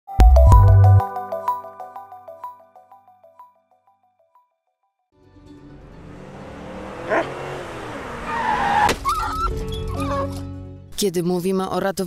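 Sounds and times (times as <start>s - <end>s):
car striking something: 5.7s - 9.1s
tyres squealing: 6.3s - 10.4s.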